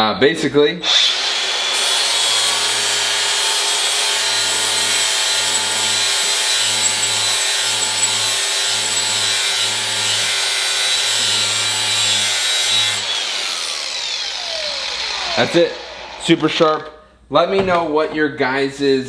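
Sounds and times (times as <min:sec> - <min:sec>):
grinder spinning down: 0:00.8 - 0:16.7
angle grinder grinding steel: 0:00.8 - 0:16.8.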